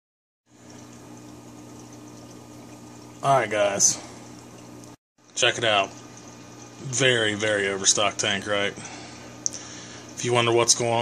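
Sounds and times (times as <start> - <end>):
aquarium pump humming: 0.5 - 11.0
bubbling water: 0.5 - 11.0.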